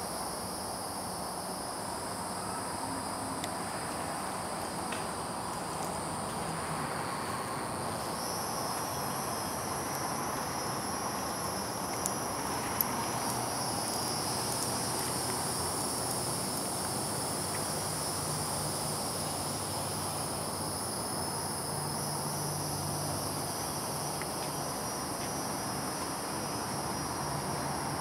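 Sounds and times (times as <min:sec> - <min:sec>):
insect chorus: 0:00.0 - 0:28.0.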